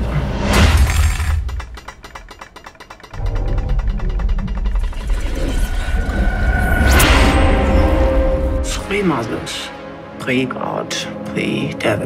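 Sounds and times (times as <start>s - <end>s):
rattle of clicks: 0.8s - 5.5s
deep rumble: 3.2s - 9.4s.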